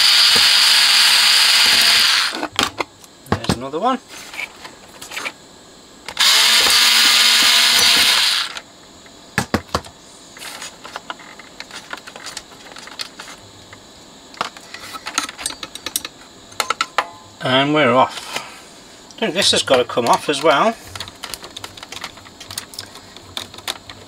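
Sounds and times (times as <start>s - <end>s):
electric screwdriver running: 0.0s - 2.4s, 6.2s - 8.6s
clicks and taps of metal parts: 14.4s - 17.2s.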